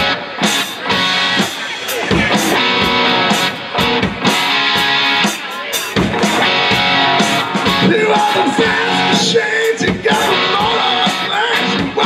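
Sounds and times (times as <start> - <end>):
drum kit beat: 0.0 - 12.0
electric guitar: 0.0 - 12.0.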